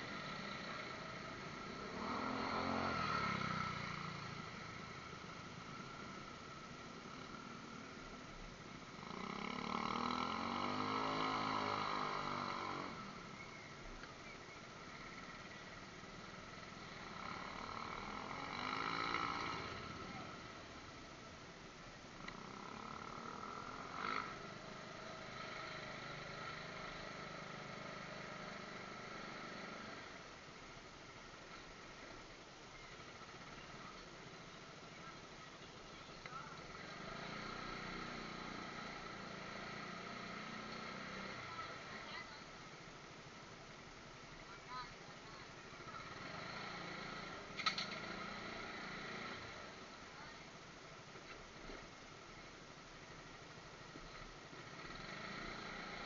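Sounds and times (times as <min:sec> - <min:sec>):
motorcycle engine revving: 0:00.0 - 0:21.0, 0:22.2 - 0:30.4, 0:35.8 - 0:44.0, 0:44.7 - 0:50.5, 0:54.0 - 0:56.0.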